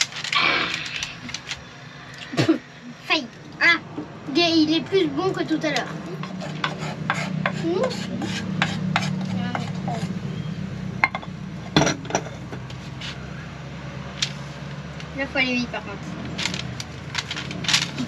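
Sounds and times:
utensil scraping a saucepan: 6.2s - 10.2s.

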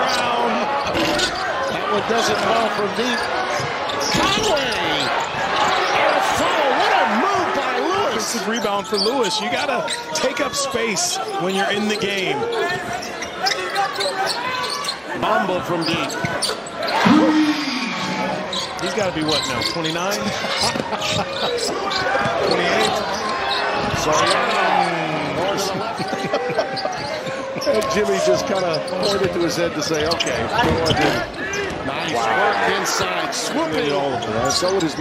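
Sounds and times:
arena crowd noise: 0.0s - 35.0s
voices calling out: 11.2s - 29.2s
man laughing: 26.0s - 27.2s.

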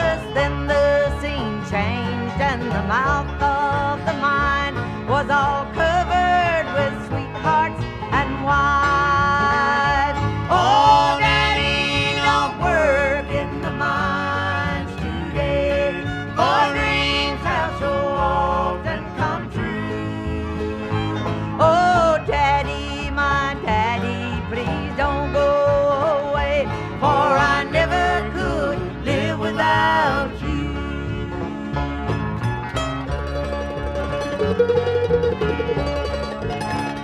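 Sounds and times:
acoustic guitar: 0.0s - 37.0s
banjo: 0.0s - 37.0s
bass: 0.0s - 37.0s.

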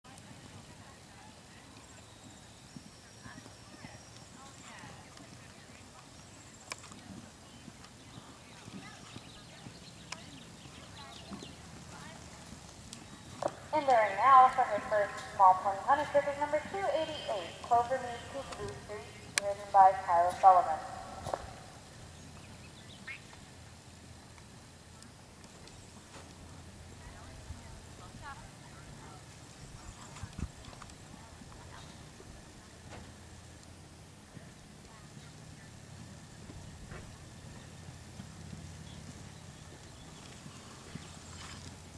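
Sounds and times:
hooves cantering on sand: 0.1s - 41.9s
pony hoofbeats on dirt: 0.2s - 23.6s, 25.3s - 41.9s.

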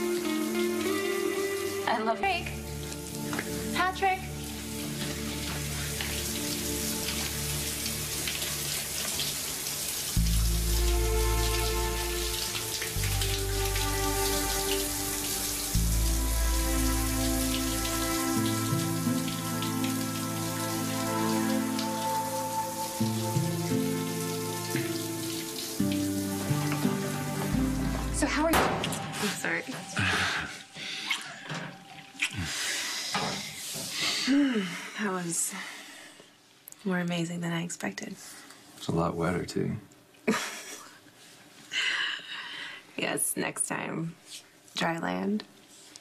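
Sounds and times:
slow music with sustained chords: 0.0s - 33.7s
shower spray running: 0.0s - 34.2s.

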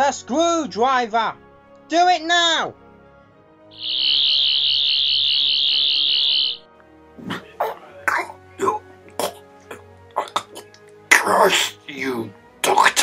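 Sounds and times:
high warbling whine: 3.8s - 6.6s
harsh coughing and spluttering: 7.1s - 13.0s.

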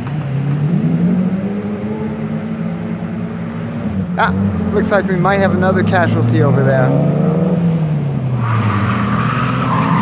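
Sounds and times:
car engine at high revs: 0.0s - 10.0s.

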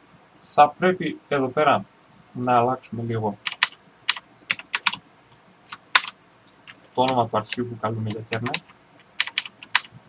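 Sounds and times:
keyboard keystrokes: 3.5s - 5.0s, 5.7s - 7.2s, 8.1s - 9.9s.

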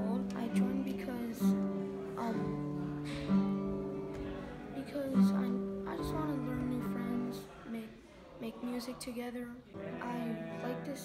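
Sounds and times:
acoustic guitar plucked notes: 0.0s - 7.5s, 9.8s - 11.0s.

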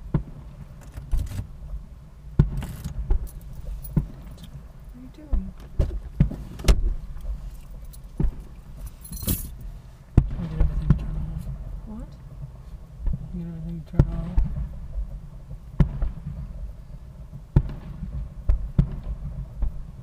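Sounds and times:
fireworks bangs and pops: 0.0s - 20.0s
low rumble: 0.0s - 20.0s
fireworks crackle: 2.4s - 20.0s.

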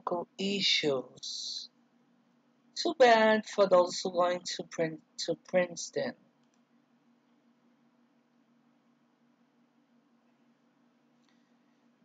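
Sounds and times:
faint low room hum: 0.0s - 12.0s
person speaking: 2.8s - 6.1s.

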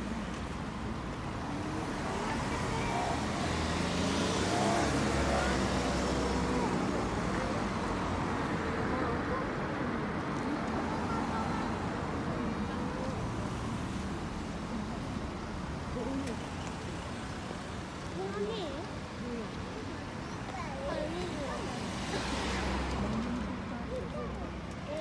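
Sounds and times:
cars driving past slowly: 0.0s - 25.0s.

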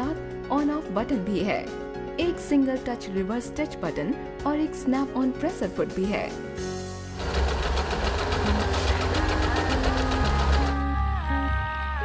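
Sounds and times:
electric sewing machine stitching: 7.1s - 10.8s.

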